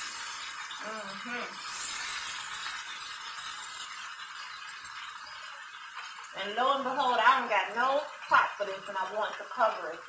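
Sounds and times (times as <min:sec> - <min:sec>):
food sizzling in a skillet: 0:00.0 - 0:10.0.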